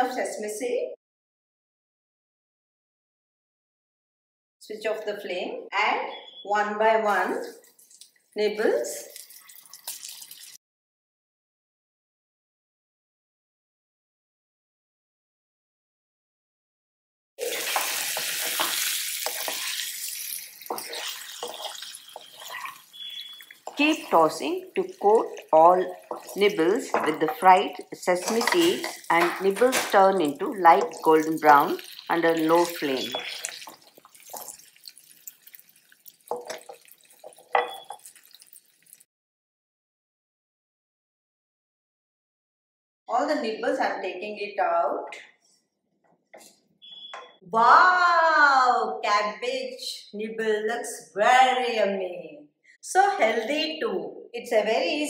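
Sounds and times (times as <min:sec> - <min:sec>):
light crackles of frying: 0:07.0 - 0:10.6, 0:17.4 - 0:39.1
oil sizzling in a wok: 0:08.9 - 0:10.6, 0:17.4 - 0:39.1
wooden spatula scraping a pan: 0:17.4 - 0:30.1, 0:31.8 - 0:37.6.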